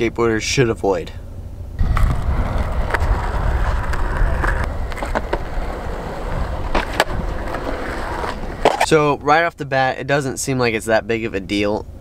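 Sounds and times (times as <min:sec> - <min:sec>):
skateboard clicks and knocks: 0:01.8 - 0:08.9
skateboard wheels rolling on concrete: 0:01.8 - 0:09.5.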